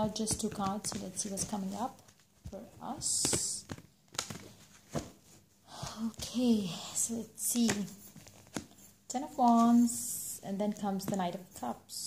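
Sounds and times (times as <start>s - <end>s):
cards rustling: 0.1s - 5.5s, 7.4s - 9.8s.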